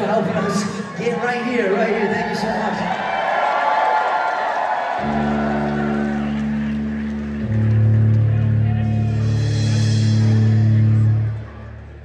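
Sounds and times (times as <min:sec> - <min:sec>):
crowd cheering: 0:00.0 - 0:12.0
electric guitar sustained note: 0:05.0 - 0:11.9.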